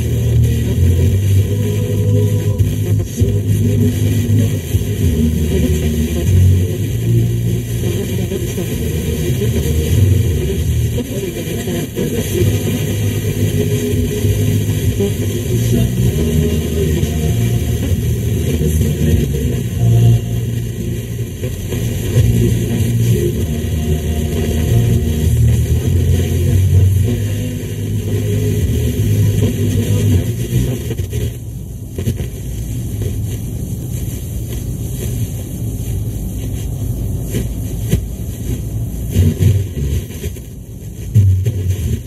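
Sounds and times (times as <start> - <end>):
vehicle engine and road noise: 0.0 - 42.0
low thumps: 41.1 - 42.0.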